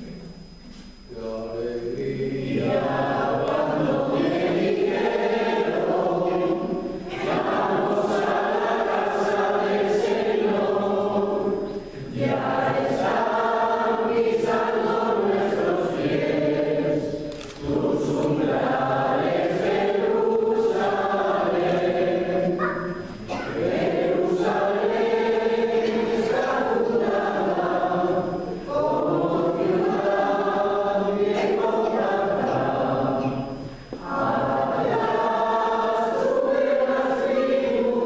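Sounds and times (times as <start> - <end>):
choir singing a hymn: 1.2 - 38.0.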